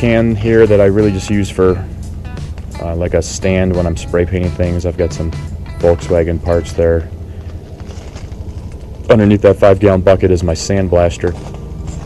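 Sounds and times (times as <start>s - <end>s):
low steady rumble: 0.0s - 12.0s
footsteps crunching on gravel: 7.3s - 10.0s, 10.6s - 12.0s.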